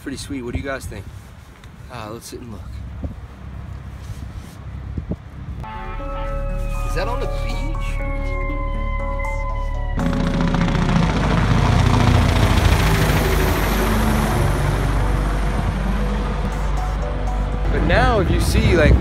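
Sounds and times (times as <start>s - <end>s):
background music: 5.6s - 19.0s
helicopter flying over: 8.8s - 19.0s.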